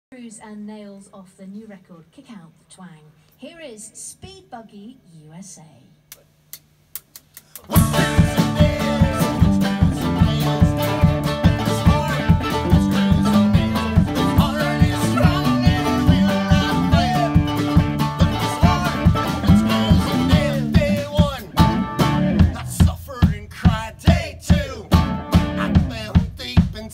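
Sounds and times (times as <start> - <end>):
sharp clicks: 6.1 - 7.7
country-rock band playing: 7.7 - 26.9.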